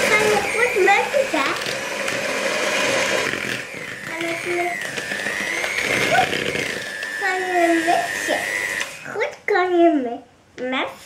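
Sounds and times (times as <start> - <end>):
electric hand mixer whining: 0.0 - 9.4.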